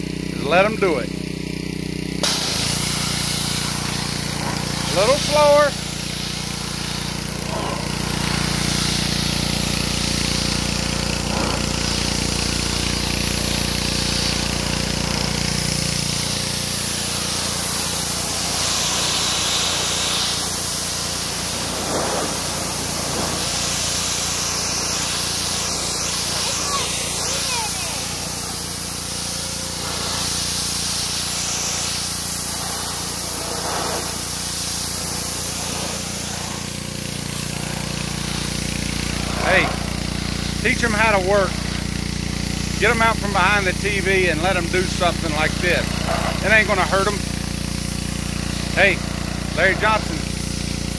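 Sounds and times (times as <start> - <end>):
pressure washer engine running: 0.0 - 50.9
water jet hissing on wood: 2.0 - 50.9.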